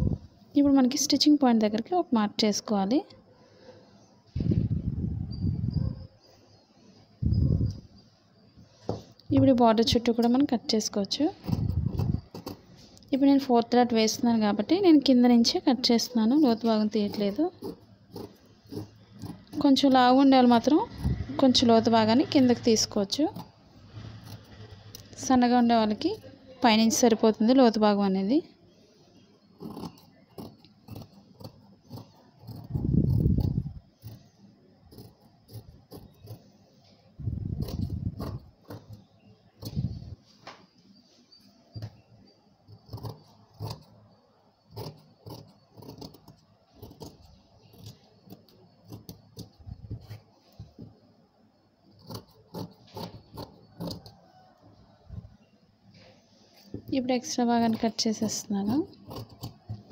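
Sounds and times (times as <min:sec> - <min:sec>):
woman's voice: 0:00.6 - 0:03.1, 0:09.3 - 0:11.4, 0:13.1 - 0:17.6, 0:19.6 - 0:23.4, 0:25.2 - 0:28.5, 0:56.9 - 0:59.0
scissors cutting fabric: 0:09.8 - 0:13.5, 0:14.7 - 0:27.1, 0:29.5 - 0:36.5, 0:37.3 - 0:40.2, 0:42.8 - 0:44.0, 0:44.6 - 0:50.8, 0:51.9 - 0:54.2, 0:56.6 - 0:59.9.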